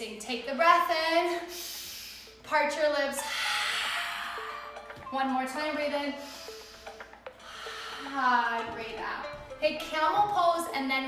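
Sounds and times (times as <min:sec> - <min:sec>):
faint background music: 0:00.0 - 0:11.0
rasping breathy inhale: 0:06.2 - 0:08.2.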